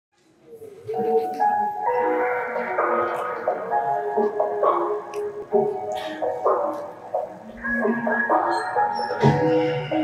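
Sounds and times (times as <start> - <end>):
instrumental pop backing track: 1.2 - 10.0.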